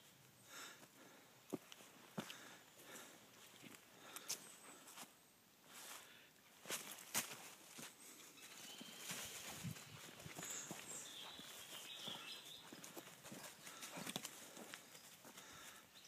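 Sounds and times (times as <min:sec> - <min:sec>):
running feet on dry leaves: 0:05.7 - 0:16.0.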